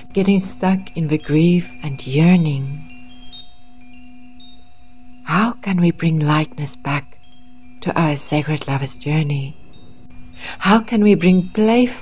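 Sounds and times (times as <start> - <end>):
chimes ringing: 0.0 - 12.0
person narrating: 5.3 - 7.1, 7.8 - 9.6, 10.4 - 12.0.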